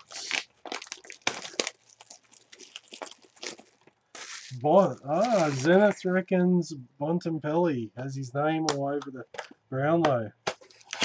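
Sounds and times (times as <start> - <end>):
cardboard tearing: 0.0 - 6.0, 10.5 - 11.0
plastic wrap crinkling: 0.0 - 6.2, 10.4 - 11.0.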